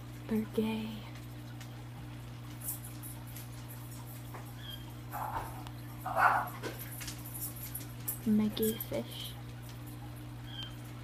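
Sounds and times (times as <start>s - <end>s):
aquarium pump humming: 0.0s - 11.0s.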